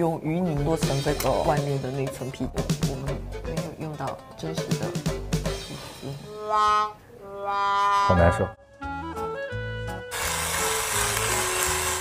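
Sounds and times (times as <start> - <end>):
background music with bass: 4.5 - 6.3
loud grinding noise: 10.1 - 12.0.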